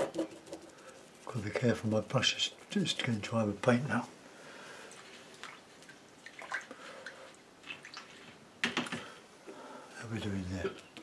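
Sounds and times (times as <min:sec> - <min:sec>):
water splashing and dripping: 0:04.9 - 0:09.1.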